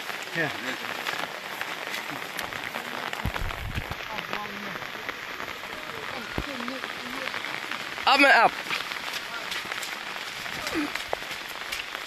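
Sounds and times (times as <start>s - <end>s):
rain pattering: 0.0s - 12.0s
dull low thumps: 3.2s - 4.1s.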